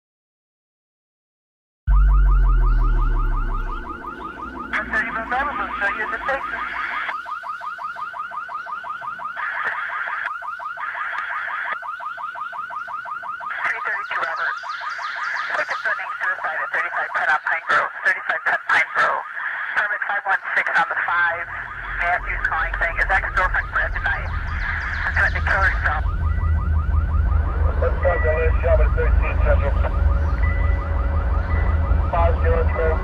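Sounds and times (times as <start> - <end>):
deep low boom: 1.9 - 6.8, 21.4 - 33.0
higher pulsing layers: 1.9 - 7.1, 21.4 - 33.0
fast pulsing chirr: 21.4 - 33.0.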